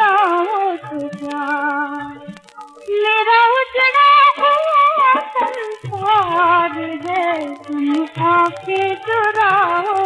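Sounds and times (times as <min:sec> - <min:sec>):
film song from vinyl record: 0:00.0 - 0:10.0
high female voice singing: 0:02.9 - 0:10.0.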